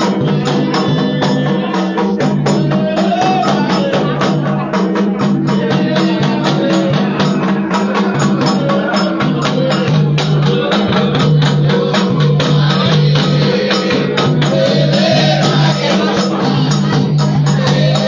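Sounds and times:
drums beating fast rhythm: 0.0 - 18.0
group singing: 0.0 - 18.0.

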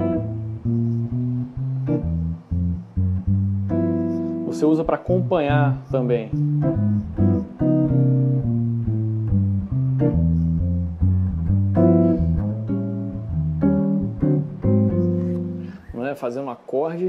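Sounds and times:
clean electric guitar chords: 0.0 - 15.8
walking bass line: 0.0 - 15.9.

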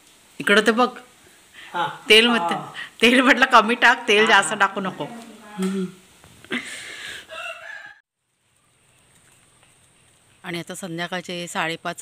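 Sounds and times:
rooster crowing: 7.2 - 8.0.

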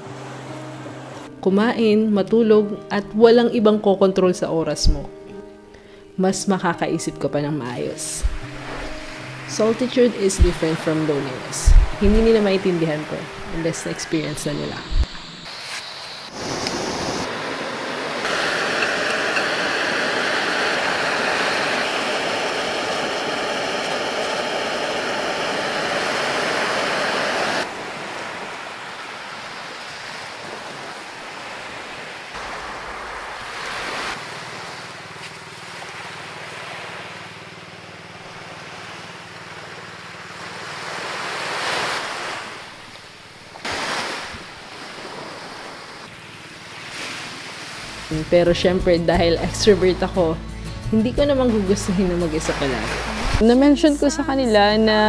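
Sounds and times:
steady hiss: 14.6 - 17.3
waves washing onto sandy beach: 15.5 - 48.2.

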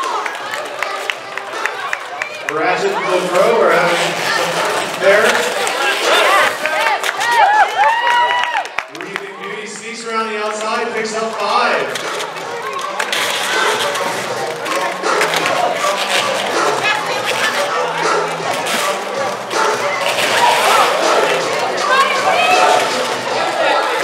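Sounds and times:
faint music: 0.0 - 24.0
people calling out: 9.6 - 24.0.

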